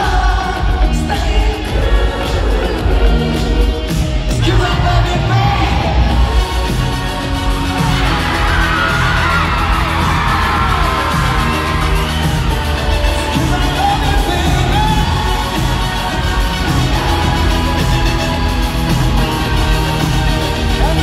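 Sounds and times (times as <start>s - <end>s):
live band playing: 0.0s - 21.0s
crowd screaming and whooping: 5.2s - 21.0s.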